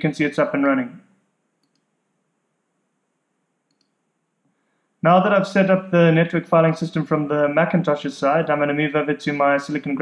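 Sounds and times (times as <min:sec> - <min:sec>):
computer mouse clicks: 0:01.6 - 0:02.0, 0:03.6 - 0:04.1.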